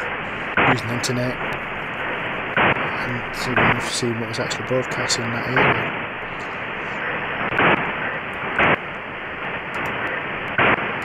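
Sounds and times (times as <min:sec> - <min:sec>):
loud noise bursts: 0:00.0 - 0:11.0
radio static hiss: 0:00.0 - 0:11.0.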